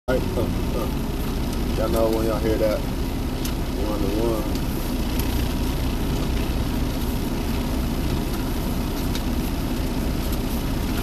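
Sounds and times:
vehicle engine low rumble: 0.1s - 11.0s.

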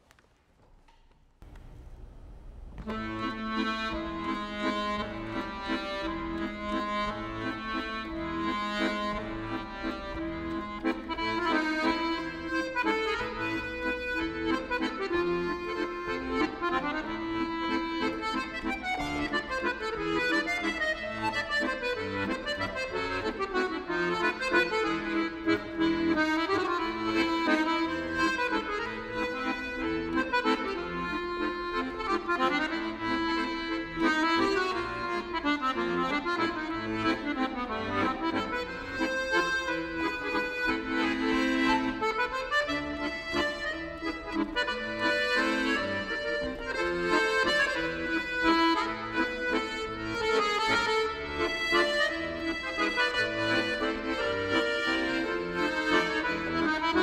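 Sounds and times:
piano accordion melody: 2.8s - 57.0s.

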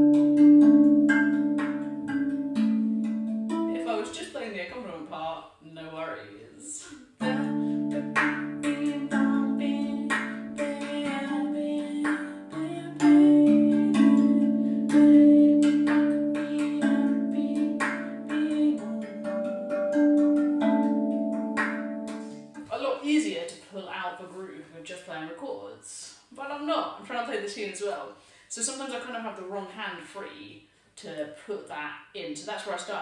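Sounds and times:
steel tongue drum played by hand: 0.0s - 4.1s, 7.2s - 22.7s.

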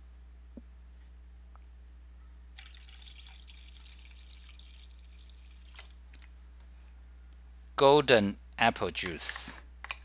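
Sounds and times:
juice pouring into cup: 2.6s - 6.4s.

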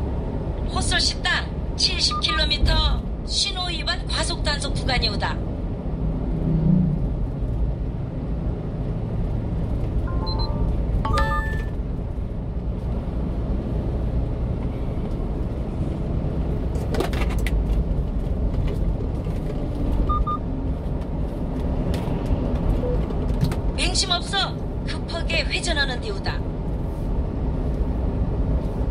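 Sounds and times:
truck engine and tyres rumbling: 0.0s - 28.9s
faint short beeps: 10.1s - 11.8s.

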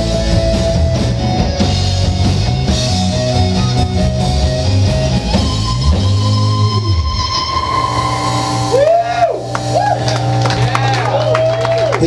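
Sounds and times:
rock band chord ringing out: 0.0s - 12.0s
amplifier hum: 6.1s - 12.0s
audience whooping: 6.8s - 12.0s.

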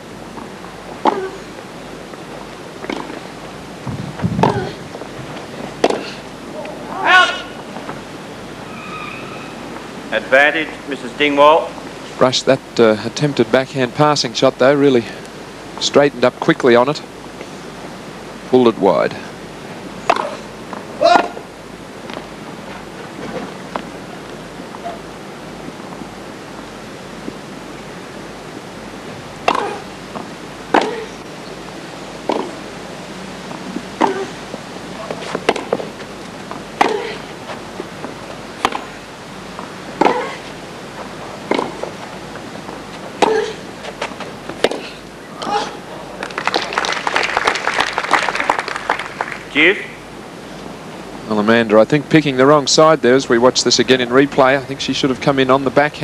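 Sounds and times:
racket hitting tennis ball: 2.8s - 3.2s, 4.4s - 4.8s, 5.8s - 6.2s, 20.0s - 21.4s, 29.4s - 31.2s, 32.2s - 32.6s, 33.9s - 39.0s, 39.9s - 40.5s, 41.4s - 45.0s
crowd applause: 46.0s - 49.6s.

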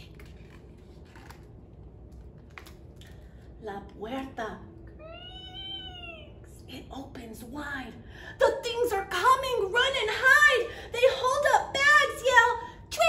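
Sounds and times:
woman making meow-like sound: 5.0s - 6.4s.

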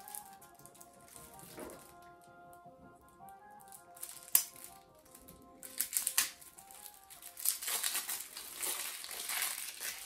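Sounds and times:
plastic wrap crackling: 0.0s - 10.0s
quiet background music: 0.0s - 10.0s.

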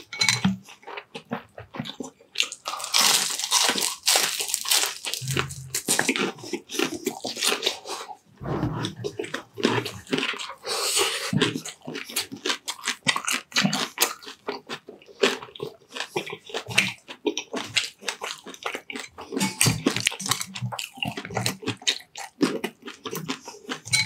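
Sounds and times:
crunching and chewing fried food: 0.0s - 8.3s, 9.2s - 24.0s.

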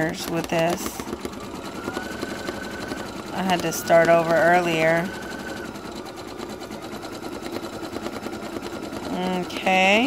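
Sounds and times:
embroidery machine stitching: 0.0s - 10.0s.

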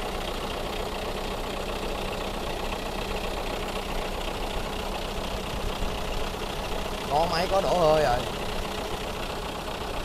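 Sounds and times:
truck engine idling: 0.0s - 10.0s.

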